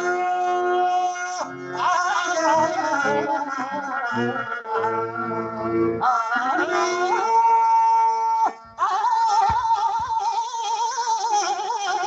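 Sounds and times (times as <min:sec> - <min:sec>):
person singing ornamented phrase: 0:00.0 - 0:12.0.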